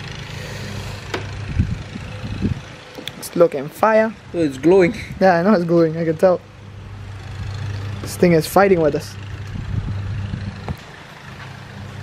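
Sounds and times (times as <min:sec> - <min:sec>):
low hum: 0:00.0 - 0:05.2, 0:06.0 - 0:12.0
handling noise of car wing: 0:01.0 - 0:01.4.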